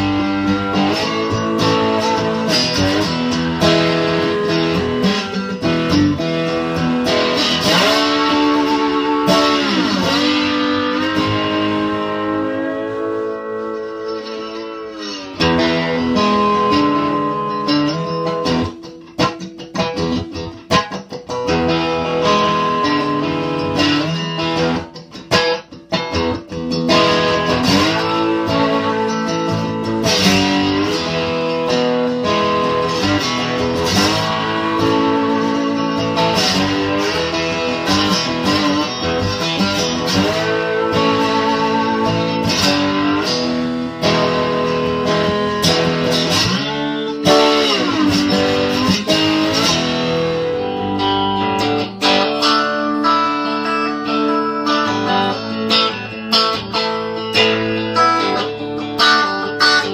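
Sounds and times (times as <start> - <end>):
resonator guitar strummed and picked: 0.0 - 59.9.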